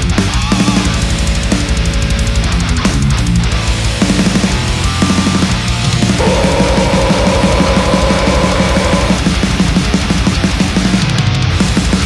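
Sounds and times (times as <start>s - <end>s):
distorted guitars: 0.0s - 12.0s
high held guitar note: 6.2s - 9.3s
fast dense drumming: 6.2s - 10.7s.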